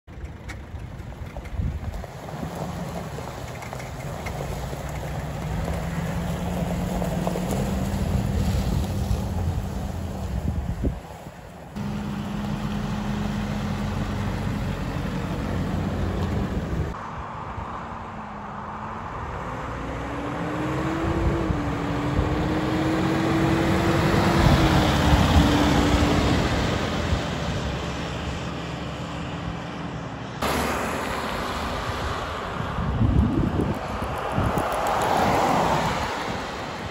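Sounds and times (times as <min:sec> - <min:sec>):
diesel engine accelerating: 0:00.1 - 0:11.0, 0:11.6 - 0:17.0, 0:18.4 - 0:35.0
wind on microphone: 0:07.6 - 0:11.1, 0:20.7 - 0:27.7, 0:31.6 - 0:36.9.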